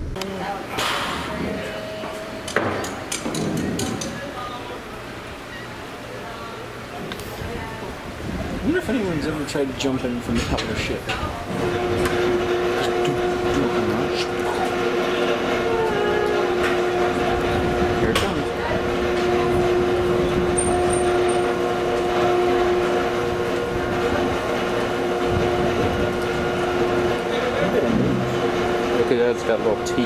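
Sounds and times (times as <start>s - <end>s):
noisy background: 0.0s - 30.0s
winch mechanical hum: 0.0s - 30.0s.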